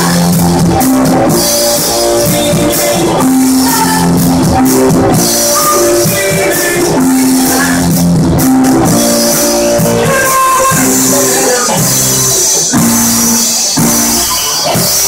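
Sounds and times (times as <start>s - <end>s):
drum kit: 0.0s - 15.0s
electric guitar: 0.0s - 15.0s
live rock band playing: 0.0s - 15.0s.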